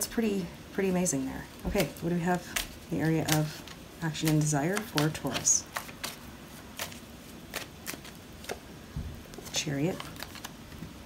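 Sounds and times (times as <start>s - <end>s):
cards rustling while shuffled: 1.2s - 11.0s.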